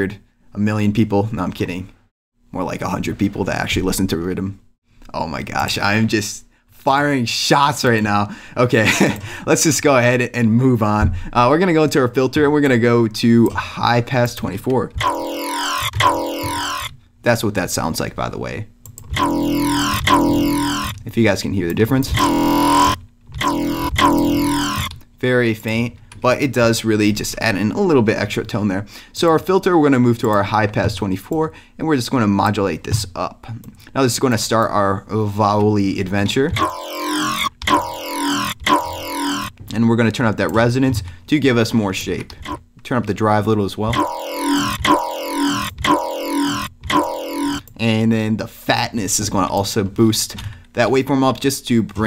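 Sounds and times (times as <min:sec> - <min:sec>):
synth growl bass notes: 0:15.0 - 0:16.9, 0:19.1 - 0:21.0, 0:22.1 - 0:24.9, 0:36.6 - 0:39.5, 0:43.9 - 0:47.7.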